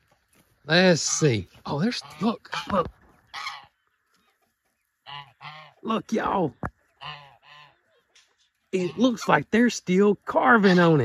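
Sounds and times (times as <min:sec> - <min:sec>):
goose honking: 0:00.9 - 0:04.0, 0:05.0 - 0:09.4, 0:10.3 - 0:11.0.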